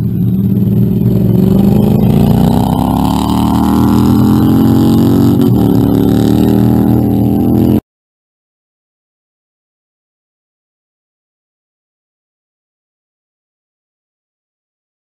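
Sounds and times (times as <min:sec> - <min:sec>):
engine accelerating hard: 0:00.0 - 0:07.8.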